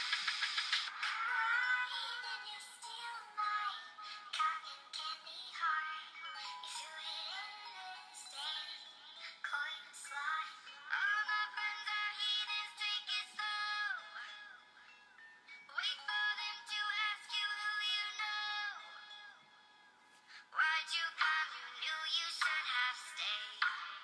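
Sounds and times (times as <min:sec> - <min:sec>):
song with high singing voice: 0:00.0 - 0:24.0.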